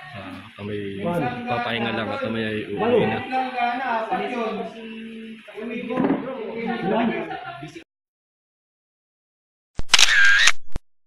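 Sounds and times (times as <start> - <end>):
camera shutter click: 9.8 - 10.6.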